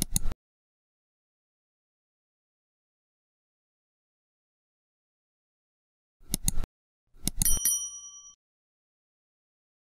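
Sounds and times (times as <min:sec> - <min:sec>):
mouse clicks: 0:00.0 - 0:00.3, 0:06.2 - 0:06.6, 0:07.2 - 0:07.6
notification bell ding: 0:07.4 - 0:08.4.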